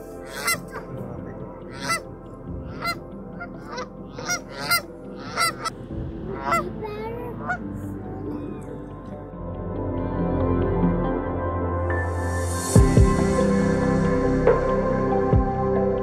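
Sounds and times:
geese honking: 0:00.0 - 0:08.9.

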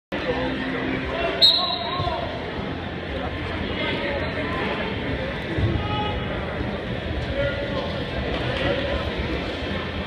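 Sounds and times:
hubbub of voices in a gym: 0:00.1 - 0:10.0
referee's whistle blast: 0:01.4 - 0:02.0.

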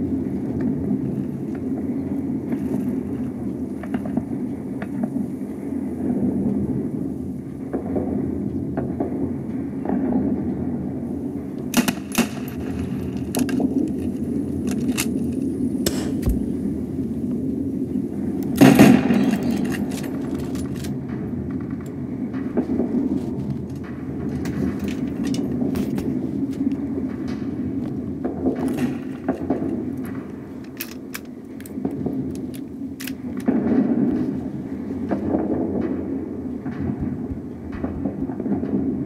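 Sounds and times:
gunshots: 0:11.7 - 0:14.2, 0:15.8 - 0:16.9, 0:18.5 - 0:21.7.

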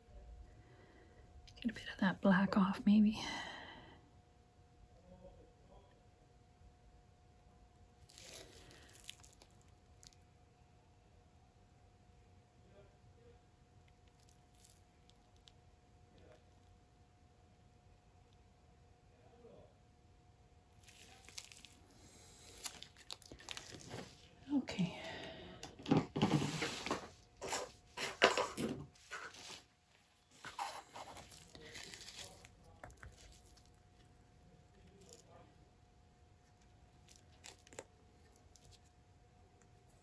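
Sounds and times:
gloved hands rustling and scraping: 0:20.8 - 0:24.3, 0:26.2 - 0:28.2, 0:28.9 - 0:33.8.

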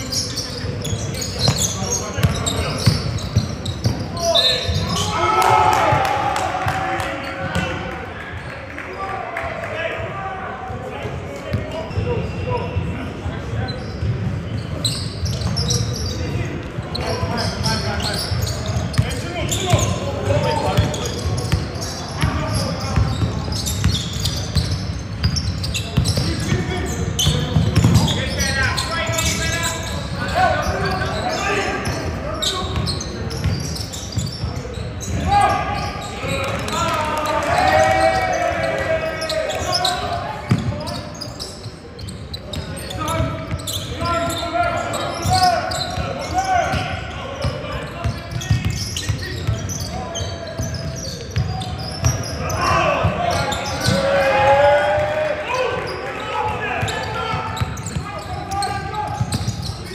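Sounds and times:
people shouting in echoing hall: 0:04.1 - 0:07.9, 0:35.2 - 0:40.4, 0:52.4 - 0:59.2.

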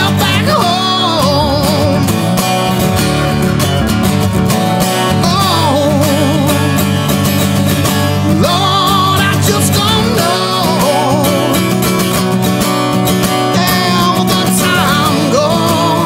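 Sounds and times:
man singing: 0:00.0 - 0:02.4, 0:05.0 - 0:07.0, 0:08.2 - 0:12.1, 0:13.3 - 0:16.0
acoustic guitar strumming: 0:00.0 - 0:16.0.

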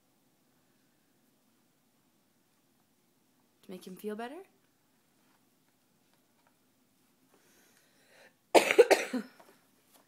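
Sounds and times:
person coughing: 0:08.5 - 0:09.4.

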